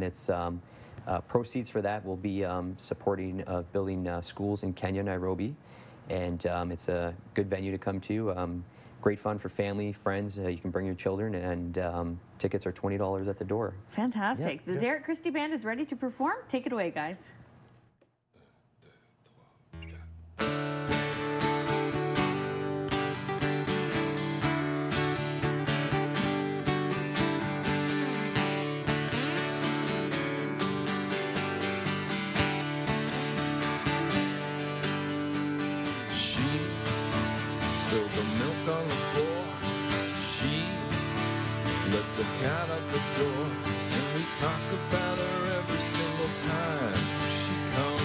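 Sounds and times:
acoustic guitars strumming: 19.8 - 48.0
picked guitar melody with bent notes: 19.8 - 48.0.

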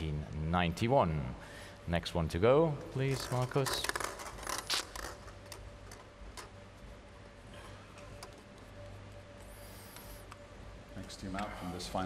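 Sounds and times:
low steady hum: 0.0 - 12.0
plastic balls clicking: 3.1 - 6.5.

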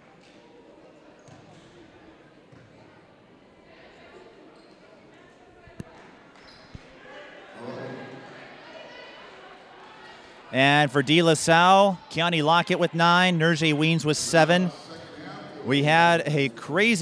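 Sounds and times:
crowd murmur echoing in hall: 0.0 - 17.0.

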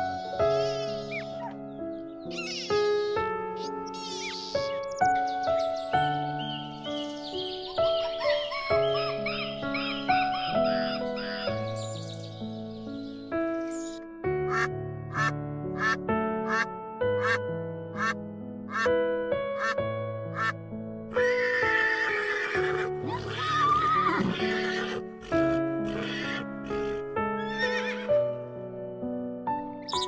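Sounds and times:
background music: 0.0 - 30.0
ducks quacking: 14.5 - 17.4, 18.0 - 18.9, 19.6 - 20.6
horse calling: 21.2 - 28.1.

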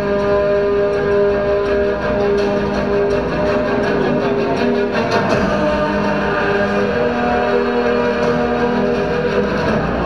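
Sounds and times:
music with sustained notes: 0.0 - 10.0.

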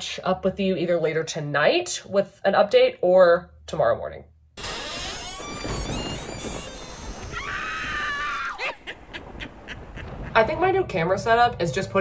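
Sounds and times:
high-pitched wail: 4.7 - 8.8.

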